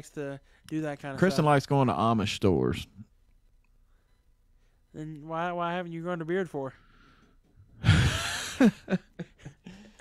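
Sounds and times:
man laughing: 0:07.8 - 0:10.0.

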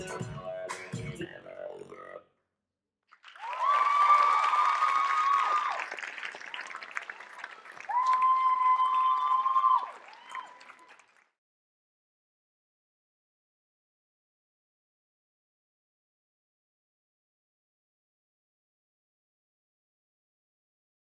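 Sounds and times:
audience applauding and cheering: 0:03.1 - 0:11.3
high-pitched cheers: 0:03.3 - 0:11.0.

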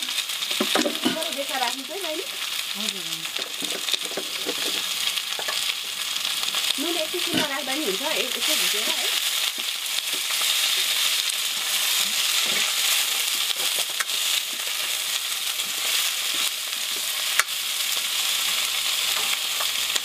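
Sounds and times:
vegetables sizzling in a pan: 0:00.0 - 0:20.0.

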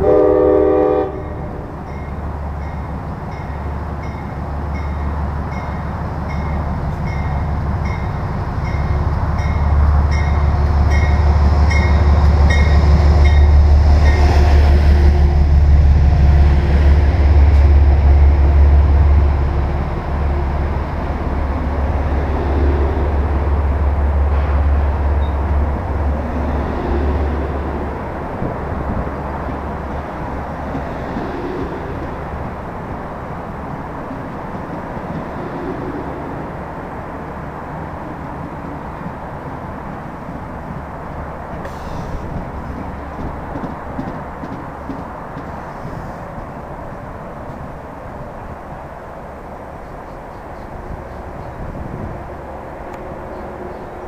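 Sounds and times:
train horn blast: 0:00.0 - 0:01.8, 0:12.0 - 0:15.6
train rumble: 0:00.0 - 0:54.0
crossing bell dinging: 0:01.8 - 0:14.2.

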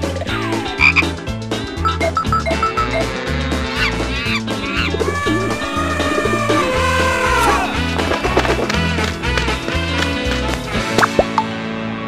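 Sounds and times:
bouncy cartoon music: 0:00.0 - 0:11.6
falling slide sound effect: 0:04.7 - 0:08.7.

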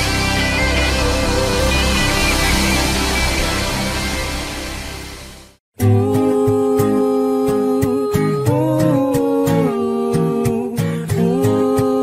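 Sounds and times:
held pitched notes: 0:00.0 - 0:08.4.

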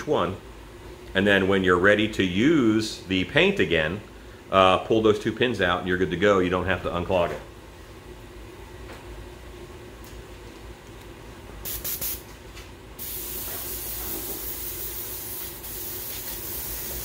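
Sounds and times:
airbrush spraying hiss: 0:11.6 - 0:12.2, 0:13.0 - 0:17.0.

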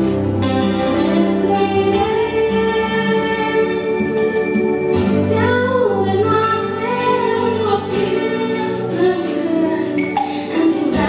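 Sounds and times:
instrumental accompaniment: 0:00.0 - 0:11.0
woman singing a carol: 0:05.3 - 0:11.0.

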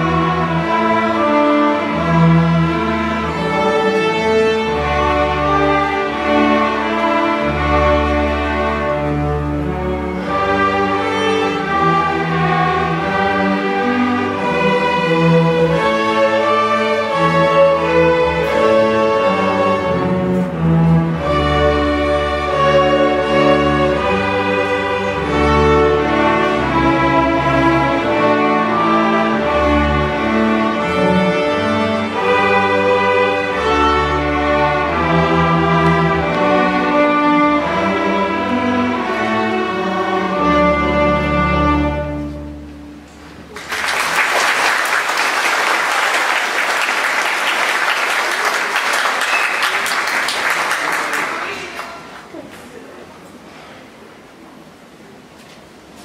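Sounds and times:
string orchestra playing: 0:00.0 - 0:56.0
audience applauding: 0:43.5 - 0:52.8.

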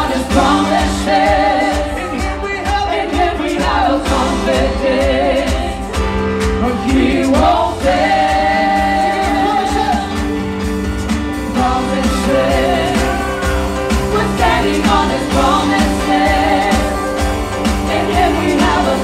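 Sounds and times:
women singing gospel: 0:00.0 - 0:06.0, 0:06.6 - 0:10.4, 0:11.4 - 0:19.0
drum kit: 0:00.0 - 0:19.0
electric keyboards: 0:00.0 - 0:19.0.

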